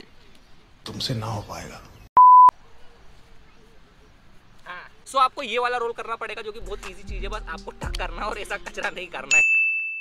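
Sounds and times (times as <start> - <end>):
short electronic beep: 2.2 - 2.5.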